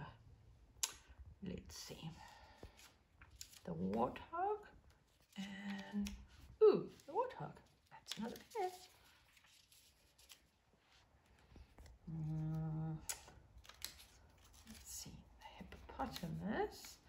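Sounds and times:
person humming: 12.1 - 13.2.

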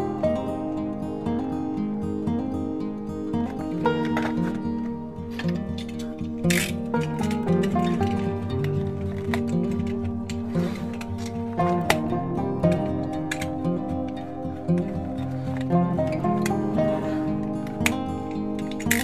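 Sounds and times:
background music with plucked guitar: 0.0 - 19.0.

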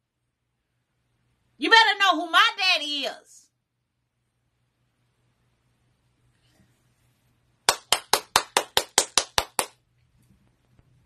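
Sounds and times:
hands clapping quickly: 7.7 - 9.8.

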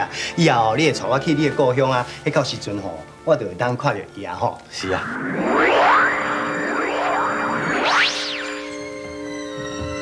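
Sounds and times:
swooping whoosh effects: 4.8 - 9.2.

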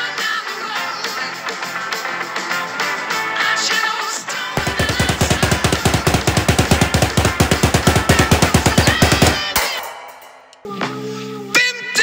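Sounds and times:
drum roll: 4.6 - 10.4.

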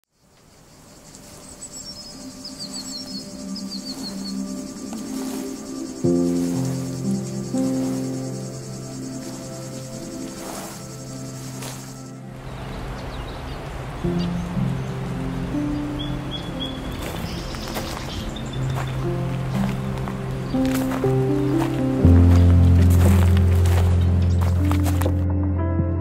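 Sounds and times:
high insect chirring: 0.1 - 12.3, 14.6 - 25.0
ambient music of held tones: 0.9 - 26.0.

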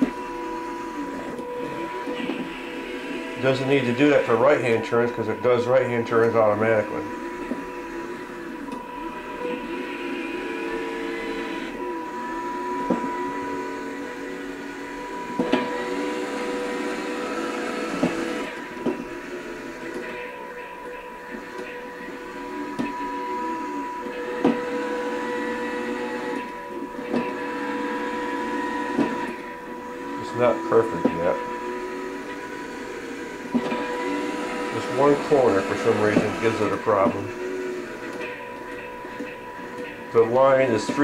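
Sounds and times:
small electric motors whining: 0.0 - 41.0
steady high-pitched whine: 0.0 - 41.0.

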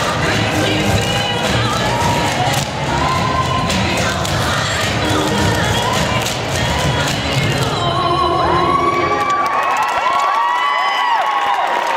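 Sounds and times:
music: 0.0 - 9.7
audience cheering and whooping: 1.5 - 4.3, 8.3 - 11.9.

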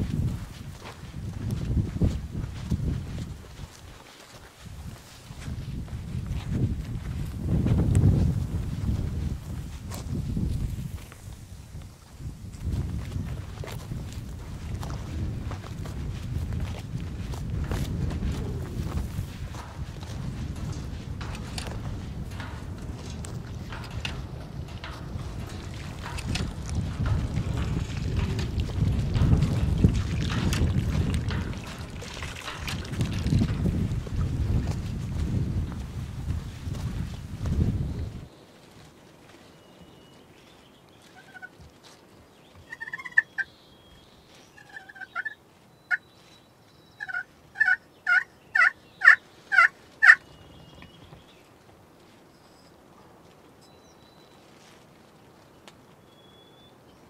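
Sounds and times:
wind buffeting microphone: 0.0 - 38.3
footsteps rustling in grass: 0.0 - 42.7, 51.0 - 56.0
turkey call yelps: 42.7 - 43.5, 44.6 - 46.0, 47.0 - 50.2.

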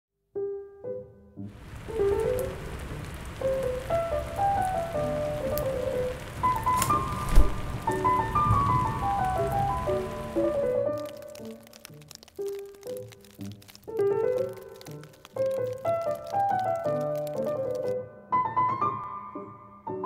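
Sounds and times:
soft piano music: 0.3 - 20.0
steady rain falling: 1.5 - 18.0
low thump: 7.2 - 7.9.

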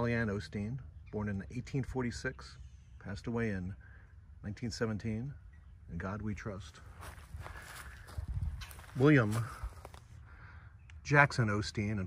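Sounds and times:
footsteps on grass and dry leaves: 6.7 - 10.2.

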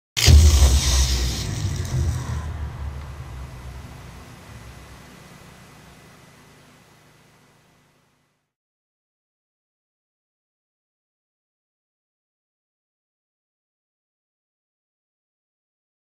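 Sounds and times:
loud low boom: 0.2 - 5.4.

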